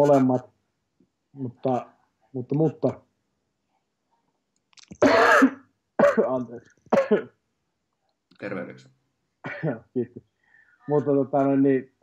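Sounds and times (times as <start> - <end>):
man coughing: 5.0 - 7.3, 9.5 - 10.0.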